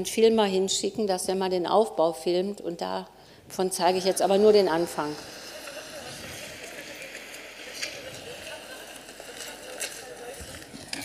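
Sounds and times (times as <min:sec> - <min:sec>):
low street noise: 0:03.7 - 0:11.0
faint voices: 0:04.1 - 0:11.0.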